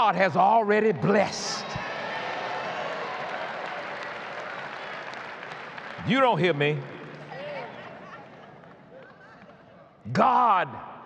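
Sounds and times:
congregation applauding: 1.8 - 9.6.

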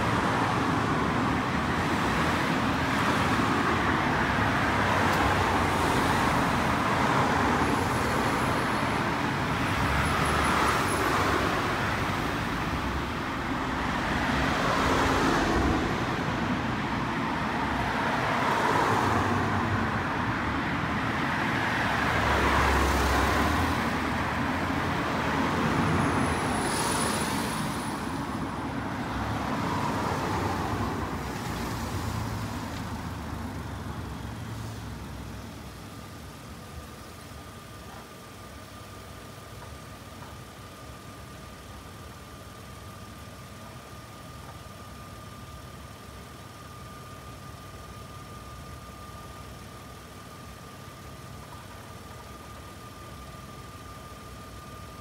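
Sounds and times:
cars passing: 0.0 - 39.2.

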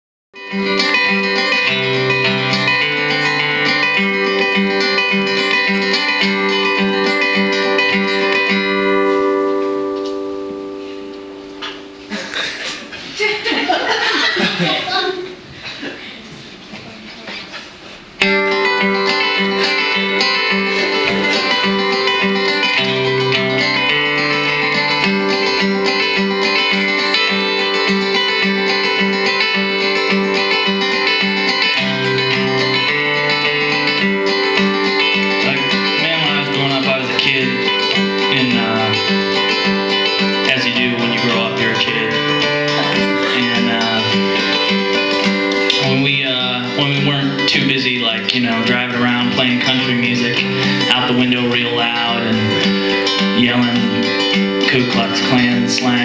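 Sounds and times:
acoustic guitar strumming: 0.4 - 15.4, 18.1 - 56.0.

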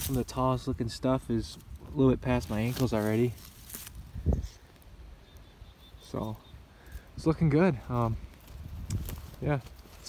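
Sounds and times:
faint high chirp: 5.1 - 6.7.

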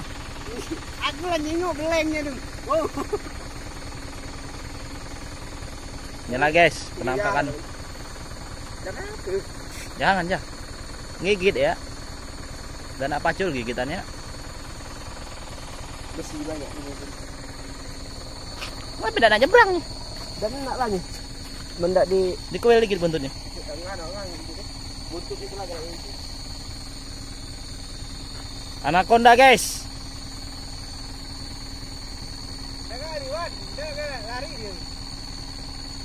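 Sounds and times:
insects chirring: 0.0 - 36.0
truck engine idling: 0.0 - 36.0.

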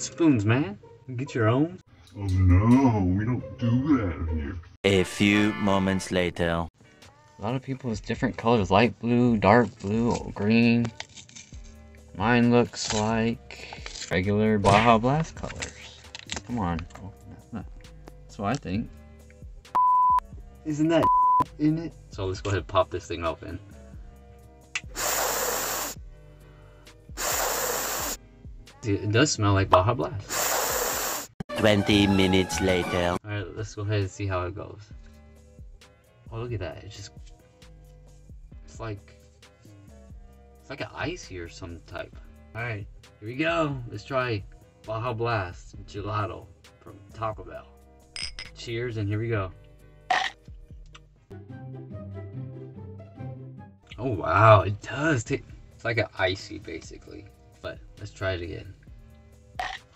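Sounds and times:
faint background music: 0.0 - 59.9
mouth slurping noise: 24.9 - 26.0, 27.2 - 28.2, 30.3 - 31.4
person sniffing: 24.9 - 26.0, 27.1 - 28.2, 30.3 - 31.4.

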